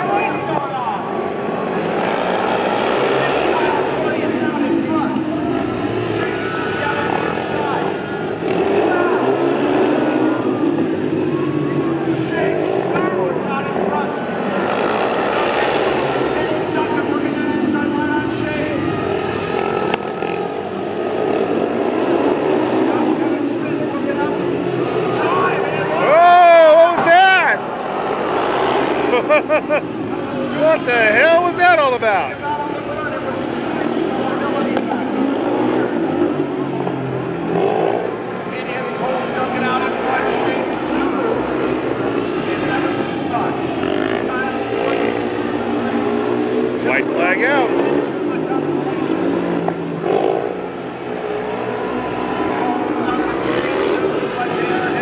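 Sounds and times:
motorcycle engines racing: 0:00.0 - 0:55.0
motorcycle passing close: 0:01.4 - 0:55.0.

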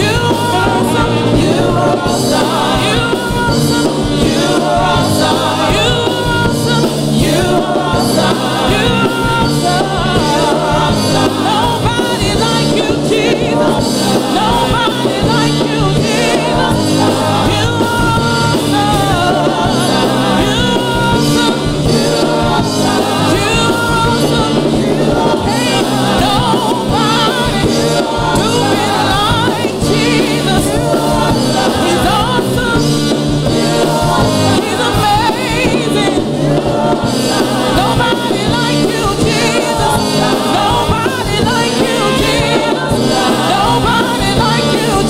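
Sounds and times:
group singing gospel: 0:00.0 - 0:45.0
steady drum beat: 0:00.0 - 0:45.0.

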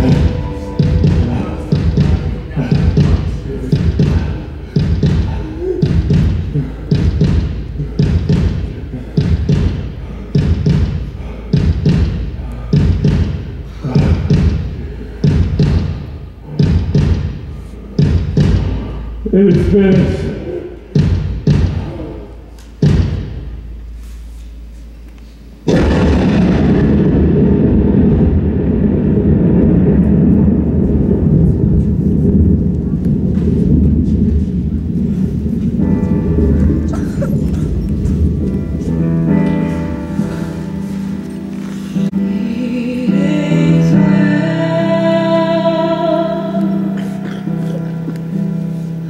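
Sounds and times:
pitched musical tones: 0:00.0 - 0:10.0
heartbeat double thuds: 0:00.0 - 0:22.0, 0:22.7 - 0:23.7, 0:25.7 - 0:41.0
deep rumbling sound effect: 0:00.0 - 0:24.0, 0:25.7 - 0:42.3.

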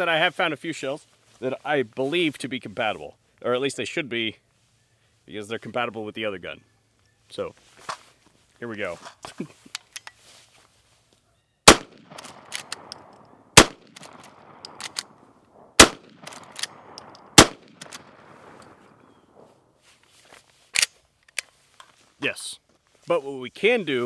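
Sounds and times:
shotgun shots with echo: 0:11.7 - 0:12.9, 0:13.6 - 0:14.9, 0:15.7 - 0:18.6
sharp click: 0:12.0 - 0:15.1, 0:15.8 - 0:18.0.

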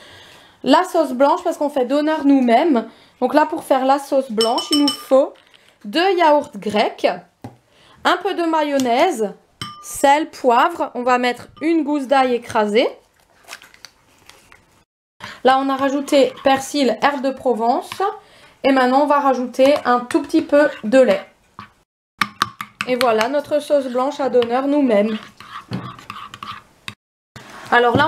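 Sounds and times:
spoon clicking on bowl: 0:04.4 - 0:05.1
spoon stirring thick sauce: 0:15.2 - 0:27.0.

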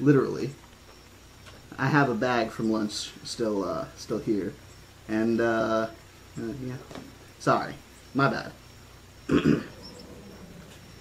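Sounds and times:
man clearing his throat: 0:09.3 - 0:09.8.

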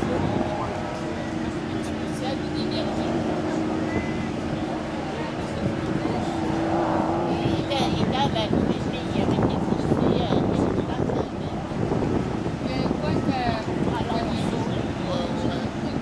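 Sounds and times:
engine humming: 0:00.0 - 0:16.0
outdoor voices and chatter: 0:00.0 - 0:16.0.

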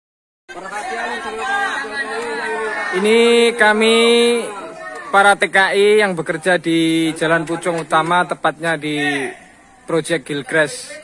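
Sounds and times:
crowd talking: 0:00.5 - 0:11.0.

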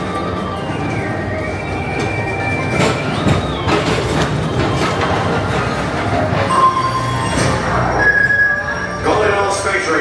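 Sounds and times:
high squeal: 0:00.0 - 0:09.6
ride vehicles rattling on track: 0:00.0 - 0:10.0.

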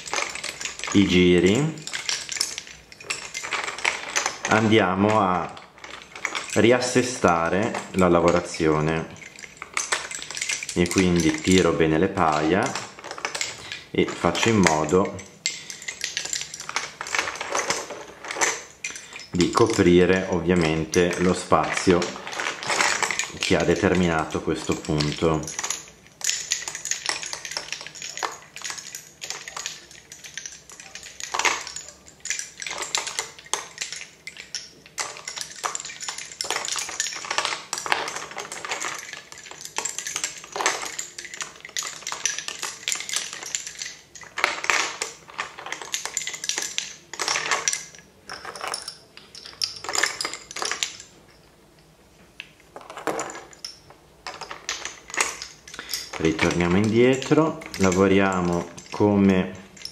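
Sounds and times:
bobbins clicking together: 0:00.0 - 0:59.9.

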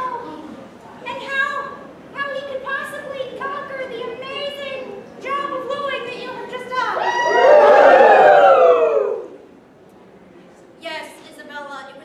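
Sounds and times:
voices wailing together: 0:07.0 - 0:09.4.

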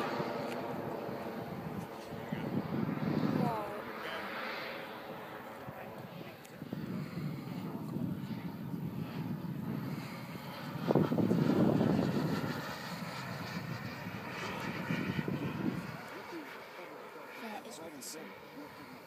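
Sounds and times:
model jet engine roaring overhead: 0:00.0 - 0:19.0.

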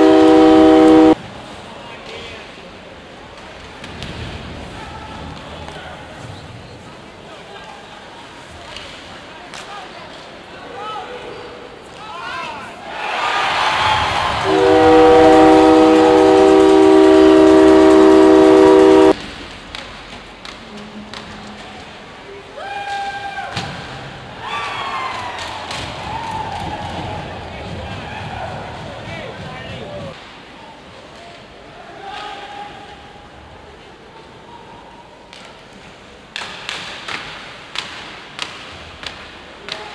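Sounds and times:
arena crowd cheering: 0:00.0 - 0:01.2, 0:12.8 - 0:19.2, 0:24.4 - 0:30.1
goal horn blast: 0:00.0 - 0:01.2, 0:14.4 - 0:19.2.

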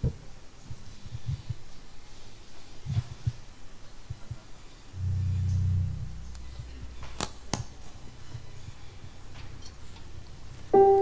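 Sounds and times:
band holding low note: 0:04.9 - 0:07.5.

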